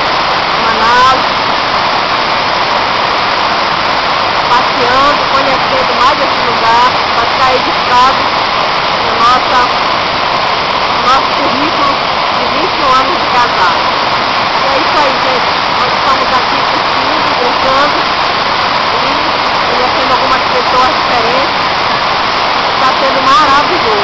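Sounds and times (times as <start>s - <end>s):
waterfall crashing over rock: 0.0s - 24.0s.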